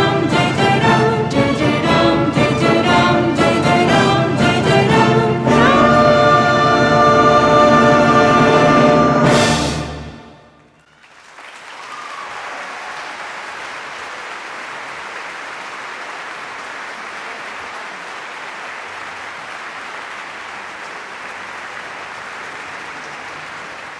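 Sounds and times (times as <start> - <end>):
orchestral chord: 0.0 - 10.5
audience applauding: 10.6 - 23.9.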